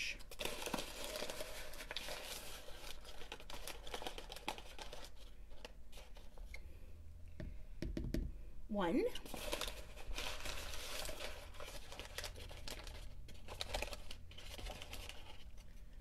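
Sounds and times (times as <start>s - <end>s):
paper and cardboard crinkling: 0.3s - 6.6s, 9.2s - 16.0s
plastic spoon tapping in box: 7.8s - 8.3s.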